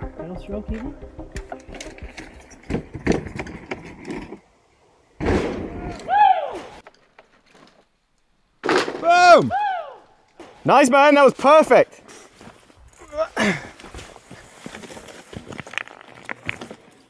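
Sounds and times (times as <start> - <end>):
mountain bike rattling and clicking: 1.6 - 4.4
bike landing impact: 1.8 - 4.4
rider whooping and shouting: 5.8 - 6.7, 9.0 - 10.0.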